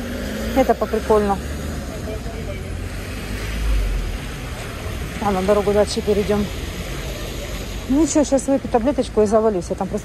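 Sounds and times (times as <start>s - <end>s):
traffic rumble: 0.0s - 10.0s
tyre hiss on wet road: 2.8s - 8.7s.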